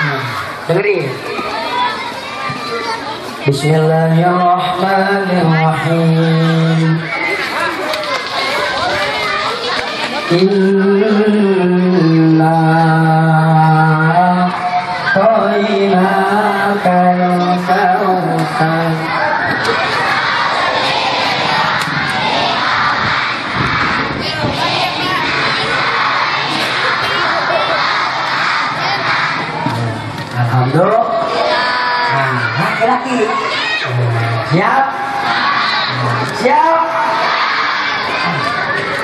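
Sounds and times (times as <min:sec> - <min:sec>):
children shouting and cheering: 0:00.0 - 0:39.0.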